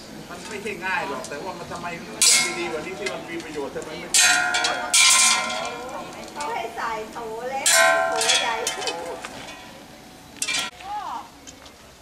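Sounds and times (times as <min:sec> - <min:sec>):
arrows clanging on metal pots: 0:02.2 - 0:03.1, 0:04.1 - 0:06.4, 0:07.6 - 0:09.7, 0:10.4 - 0:10.7.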